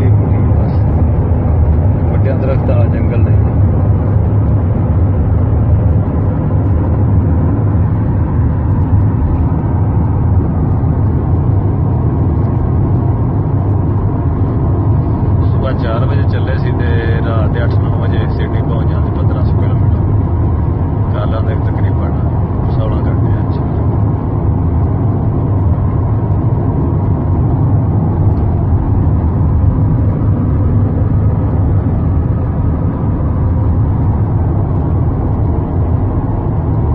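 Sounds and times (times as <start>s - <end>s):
car road and engine rumble: 0.0s - 36.9s.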